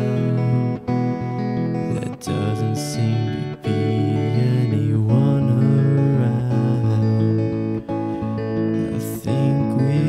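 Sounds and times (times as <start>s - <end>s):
guitar playing slow chords: 0.0s - 10.0s.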